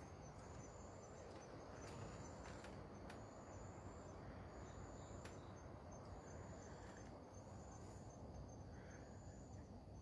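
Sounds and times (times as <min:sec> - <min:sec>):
crickets chirping: 0:00.0 - 0:10.0
low steady hiss: 0:00.0 - 0:10.0.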